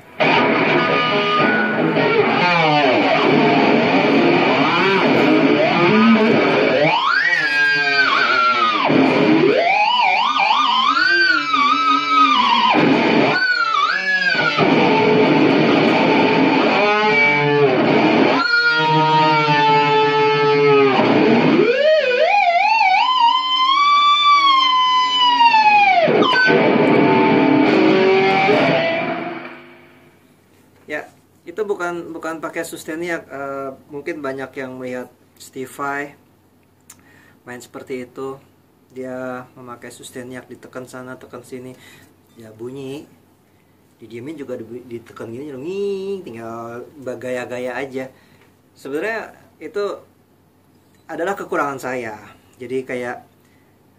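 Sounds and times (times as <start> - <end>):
distorted electric guitar sustained notes: 0.0 - 30.2.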